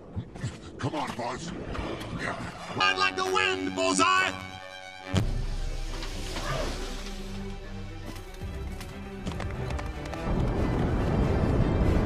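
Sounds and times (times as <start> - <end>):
orchestral film music: 1.4 - 12.0
galloping hoofbeats: 8.1 - 11.6.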